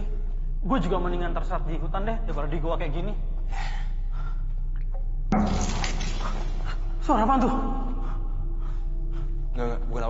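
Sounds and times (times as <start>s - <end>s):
low cave rumble: 0.0s - 10.0s.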